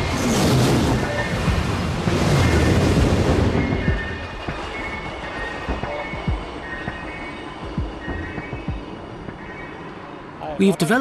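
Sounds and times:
train rushing noise: 0.0 - 11.0.

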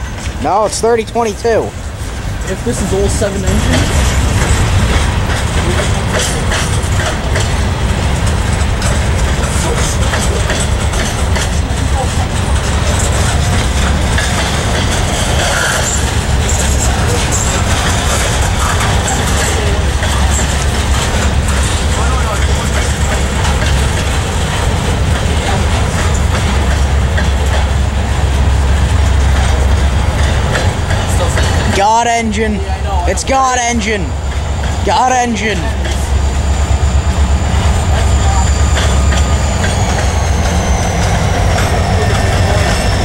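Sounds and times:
freight train wheels rumbling on rails: 0.0 - 43.0
train cars clicking and rattling: 0.0 - 43.0.

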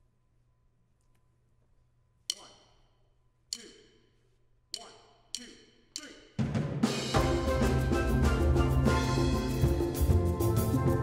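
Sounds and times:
sharp count-in clicks: 2.2 - 2.9, 3.5 - 4.1, 4.7 - 6.3
steel band playing calypso: 6.8 - 11.0.

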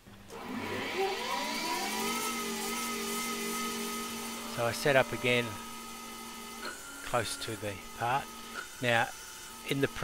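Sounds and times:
lathe spindle whine and hum: 0.3 - 10.0.

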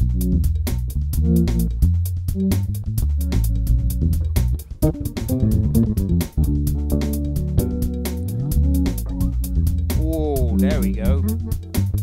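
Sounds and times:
drum machine beat: 0.0 - 12.0
electric bass chords: 0.0 - 12.0.

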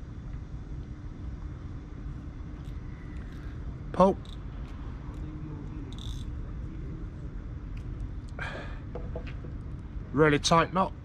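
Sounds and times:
faint hum: 0.0 - 11.0
low outdoor rumble: 0.0 - 11.0.

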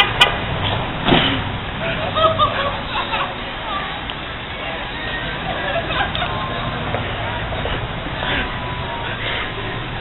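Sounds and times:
street noise rush: 0.0 - 10.0.

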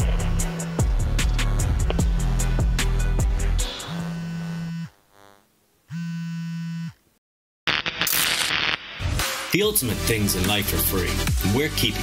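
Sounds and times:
buzzy synthesizer note: 0.0 - 5.4.

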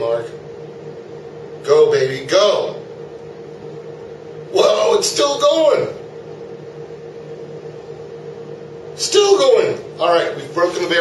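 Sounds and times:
steady motor hum: 0.0 - 11.0.

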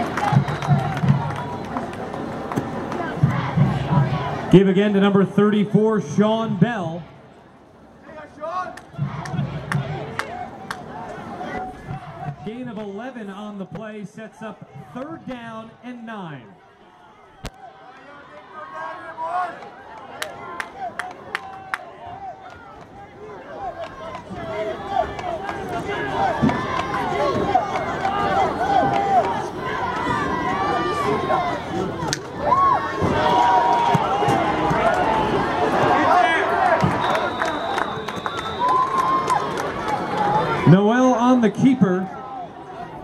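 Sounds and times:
crowd shouting and cheering: 0.0 - 43.0
short high whistle tone: 36.9 - 38.9.

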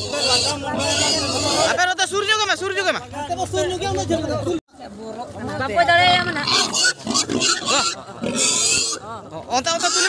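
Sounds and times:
pig squealing: 0.0 - 1.9, 6.0 - 9.0, 9.7 - 10.0
men's voices: 0.0 - 4.6.

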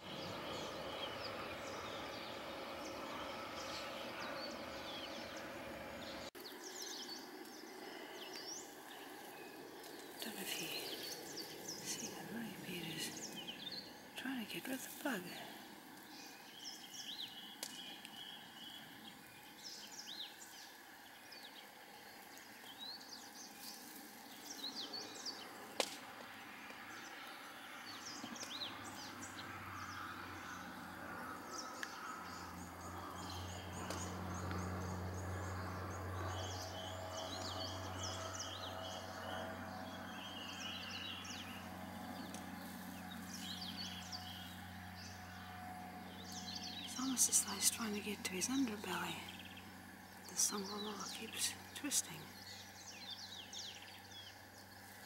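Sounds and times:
low steady hum: 0.0 - 55.0
small birds chirping: 0.0 - 55.0.

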